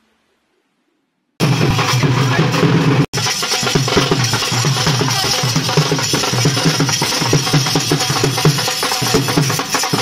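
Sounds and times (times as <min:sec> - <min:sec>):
dhol drum beat music: 0:01.4 - 0:10.0.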